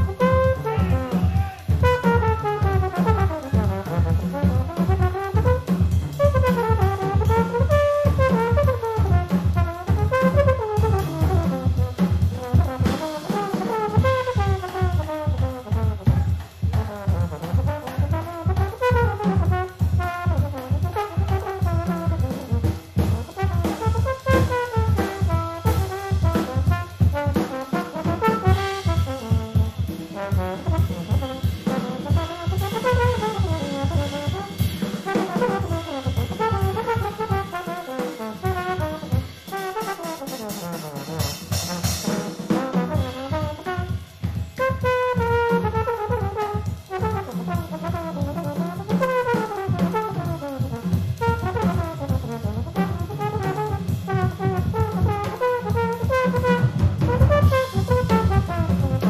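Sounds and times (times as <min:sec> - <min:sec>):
bass and drums: 0:00.0 - 0:59.0
trumpets and trombones: 0:00.0 - 0:59.0.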